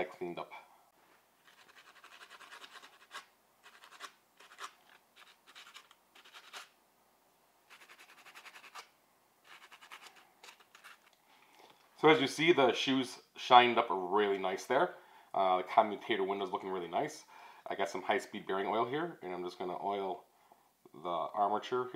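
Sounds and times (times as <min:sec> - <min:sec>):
sanding sponge scratching metal: 0:01.4 - 0:06.7, 0:07.7 - 0:08.9, 0:09.5 - 0:11.0.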